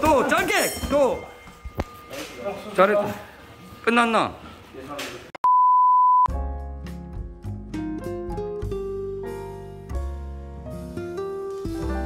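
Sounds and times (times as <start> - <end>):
electronic beep: 5.4 - 6.3.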